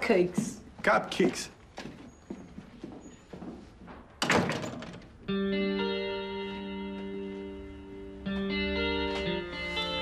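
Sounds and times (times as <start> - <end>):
glass-paned door thud and rattle: 4.2 - 5.1
plucked guitar music: 5.3 - 10.0.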